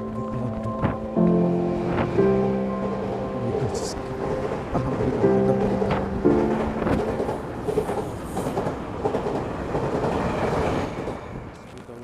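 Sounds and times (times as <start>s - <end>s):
metro train rumble: 0.0s - 12.0s.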